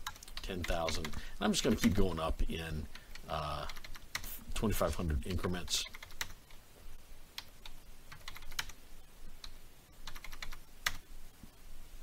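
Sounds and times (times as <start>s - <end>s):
computer keyboard typing: 0.0s - 2.0s, 2.9s - 4.3s, 5.8s - 6.6s, 7.4s - 8.8s, 9.4s - 11.0s.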